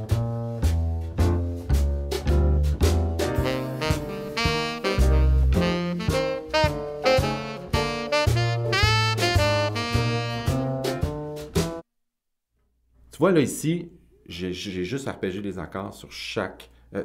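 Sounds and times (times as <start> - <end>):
drums: 0.0 - 11.8
walking bass line: 0.0 - 11.8
tenor saxophone arpeggios: 3.4 - 10.9.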